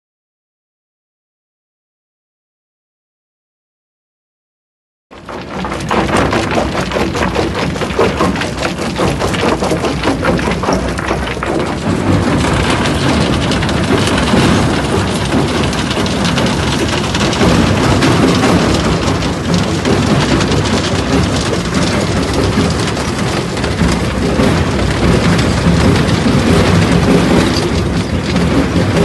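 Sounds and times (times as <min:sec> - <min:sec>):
crushing machinery running: 0:05.2 - 0:29.0
stones clattering through conveyors: 0:05.2 - 0:29.0.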